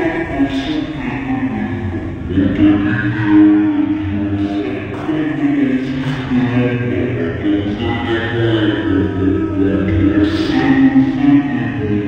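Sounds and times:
voice holding long note: 0.0s - 12.0s.

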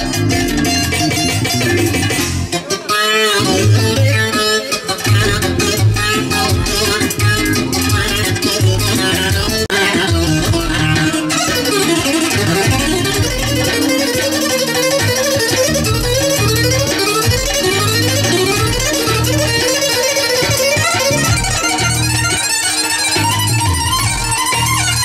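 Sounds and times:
loud live dance music: 0.0s - 25.0s.

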